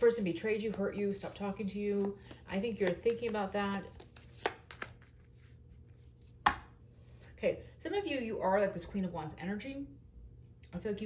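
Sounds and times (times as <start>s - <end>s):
person speaking: 0.0s - 4.0s
card tapped on table: 6.4s - 6.7s.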